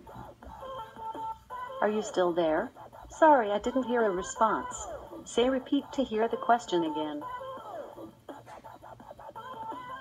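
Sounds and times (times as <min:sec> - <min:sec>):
quiet electronic music: 0:00.0 - 0:10.0
synthesized voice speaking: 0:01.8 - 0:07.3.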